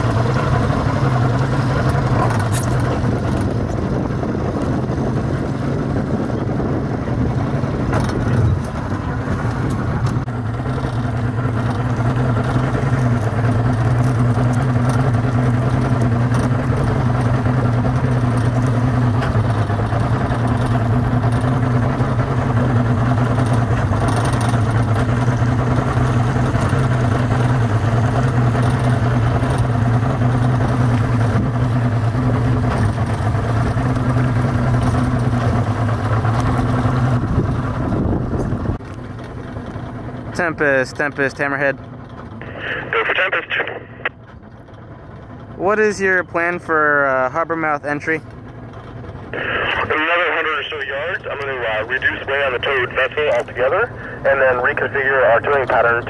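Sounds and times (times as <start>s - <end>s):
boat motor running: 0.0s - 56.0s.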